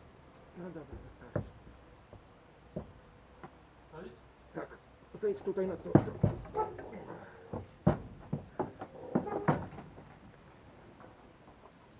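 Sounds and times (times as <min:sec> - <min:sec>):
horse hooves on a ramp: 0:00.9 - 0:03.6, 0:05.4 - 0:11.9.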